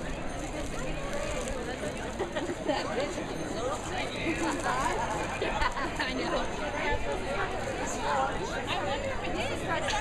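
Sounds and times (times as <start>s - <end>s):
crowd chatting: 0.0s - 10.0s.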